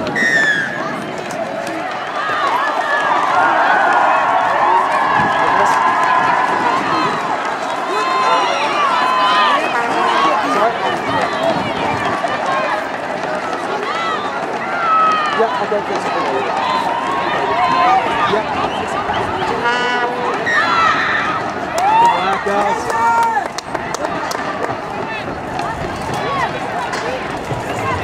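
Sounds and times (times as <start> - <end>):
crowd shouting and cheering: 0.0 - 28.0.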